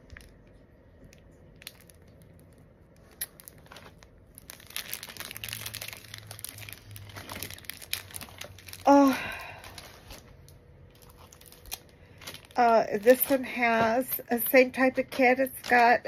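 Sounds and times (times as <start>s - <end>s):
plastic bags crinkling: 0.0s - 16.0s.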